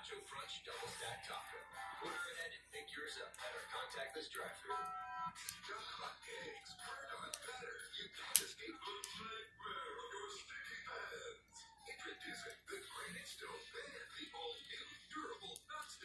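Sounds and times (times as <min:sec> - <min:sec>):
television speech and music: 0:00.0 - 0:16.0.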